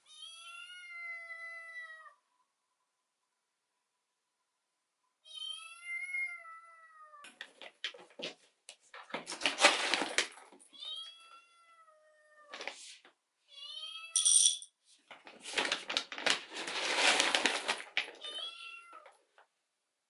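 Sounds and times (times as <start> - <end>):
coffee bag rustling: 7.6 - 10.6, 15.1 - 18.6
kitten meowing: 18.2 - 19.0.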